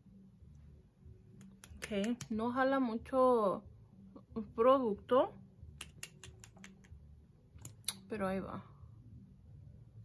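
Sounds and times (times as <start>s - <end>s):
wet lip smacking clicks: 1.4s - 2.4s, 5.8s - 7.0s, 7.6s - 8.1s.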